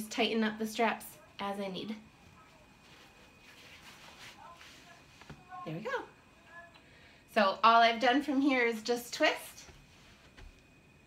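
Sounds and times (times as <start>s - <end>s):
fabric and straps rustling: 2.1s - 5.8s, 9.5s - 10.7s.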